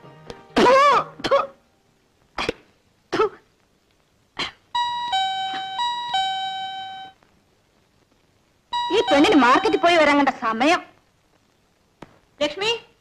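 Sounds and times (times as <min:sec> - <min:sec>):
two-tone doorbell chime: 0:04.8 - 0:07.2, 0:08.8 - 0:10.0.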